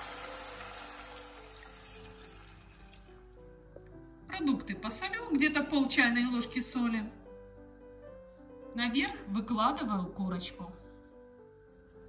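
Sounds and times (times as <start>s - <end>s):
water poured into hot frying pan: 0.0s - 3.1s
soft background music: 0.0s - 12.0s.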